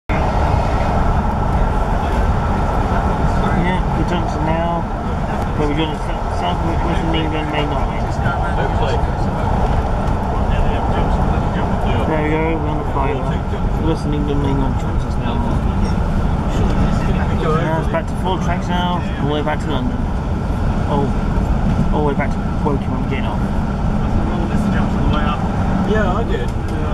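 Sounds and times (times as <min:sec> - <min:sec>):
train coach rumbling and rattling: 0:00.0 - 0:26.9.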